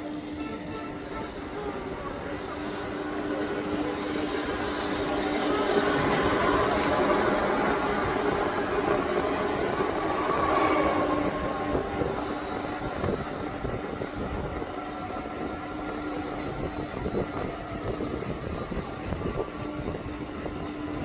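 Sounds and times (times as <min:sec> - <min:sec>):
road and traffic noise: 0:00.0 - 0:21.0.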